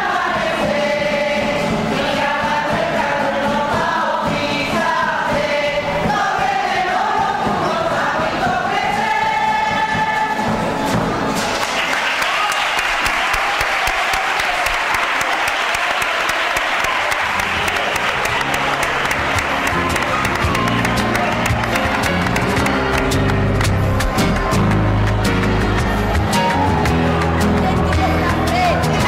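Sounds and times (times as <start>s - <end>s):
audience applause: 11.4s - 29.0s
low instrumental music: 17.2s - 29.0s.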